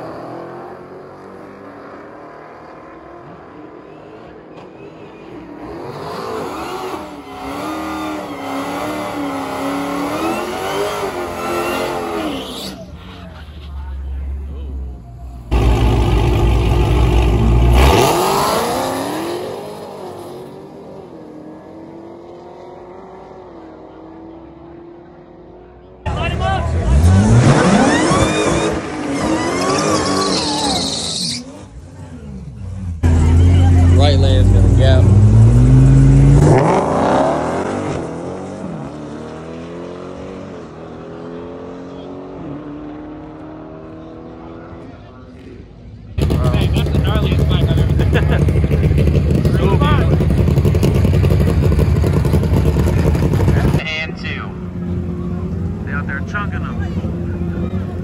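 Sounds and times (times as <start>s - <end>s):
tire squeal: 3.8s - 14.0s, 27.4s - 31.8s
drag racing car engine accelerating: 5.4s - 13.8s, 15.5s - 58.0s.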